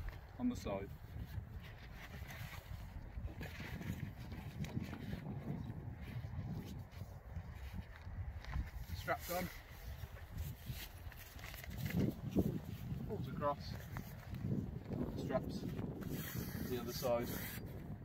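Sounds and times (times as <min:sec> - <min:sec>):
wind rumble on microphone: 0:00.0 - 0:18.0.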